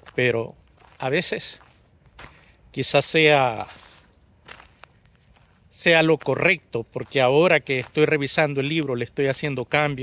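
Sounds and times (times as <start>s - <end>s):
man talking: 0.0s - 1.7s, 2.7s - 4.0s, 5.7s - 10.0s
faint footsteps: 0.0s - 10.0s.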